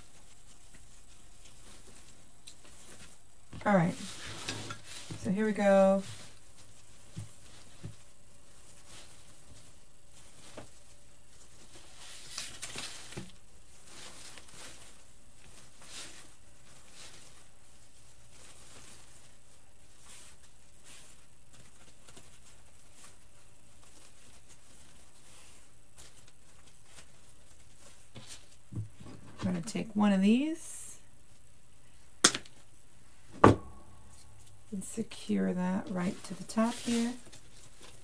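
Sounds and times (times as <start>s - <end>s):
faint electric buzz: 0.0s - 38.0s
ribbon and pine sprigs rustling: 0.0s - 38.0s.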